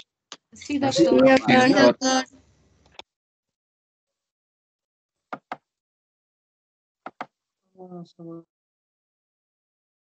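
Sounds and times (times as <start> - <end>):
person speaking over video call: 0.4 - 2.3.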